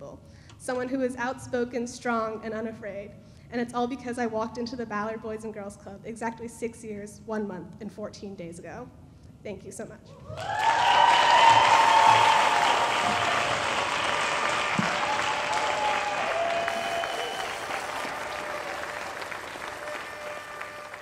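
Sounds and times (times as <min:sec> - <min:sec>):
audience applauding and cheering: 0:10.3 - 0:21.0.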